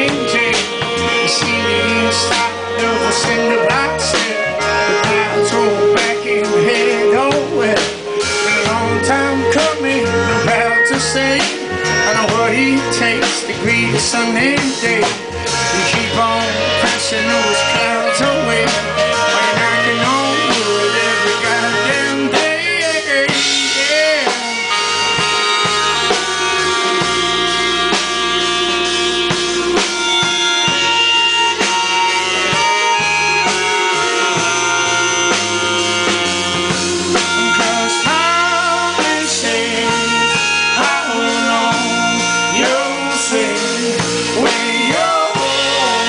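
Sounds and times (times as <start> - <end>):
drums: 0.0 - 46.0
guitar: 0.0 - 46.0
melodica playing held notes: 0.0 - 46.0.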